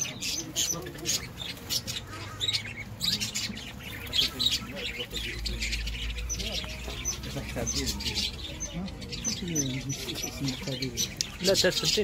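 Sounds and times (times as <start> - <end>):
birds chirping and squawking: 0.0 - 12.0.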